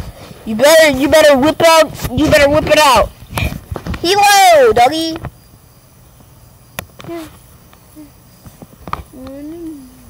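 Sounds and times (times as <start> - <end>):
child's sing-song voice: 9.1 - 10.0.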